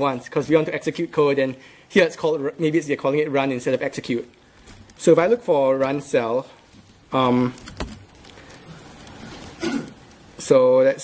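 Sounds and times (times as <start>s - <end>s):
laptop keyboard typing: 6.7s - 10.4s
person clearing throat: 9.6s - 10.0s.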